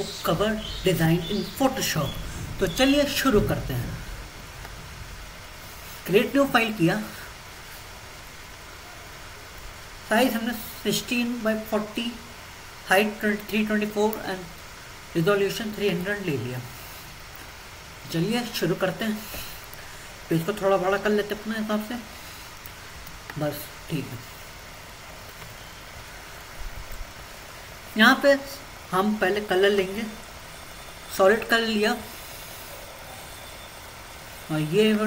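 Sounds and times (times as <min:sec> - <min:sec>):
background hiss: 0:00.0 - 0:35.0
faint low rumble: 0:00.2 - 0:08.1.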